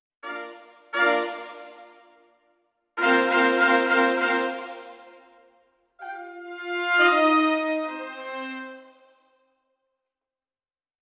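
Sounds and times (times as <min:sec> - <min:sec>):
brass ensemble sustained chords: 0:00.2 - 0:02.2, 0:03.0 - 0:05.4, 0:06.0 - 0:09.2.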